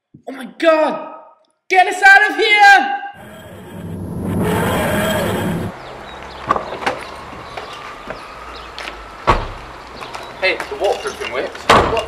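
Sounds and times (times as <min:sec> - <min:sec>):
outdoor background noise: 0:01.8 - 0:12.0
whooshing sound effect: 0:03.2 - 0:05.8.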